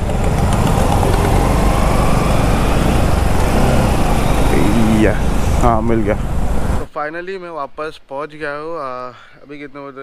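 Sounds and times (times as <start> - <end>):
motorcycle engine low rumble: 0.0 - 6.9.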